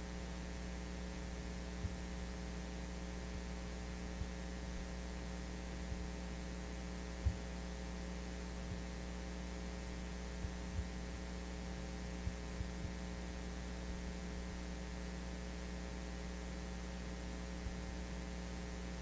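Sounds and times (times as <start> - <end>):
electrical mains hum: 0.0 - 19.0
soft low thumps: 7.2 - 7.5, 10.4 - 11.0, 12.2 - 13.0.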